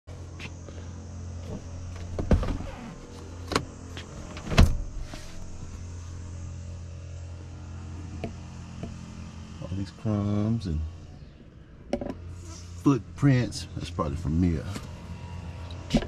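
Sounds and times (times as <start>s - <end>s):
steady low hum: 0.1s - 16.0s
car seat clunks: 1.4s - 5.1s.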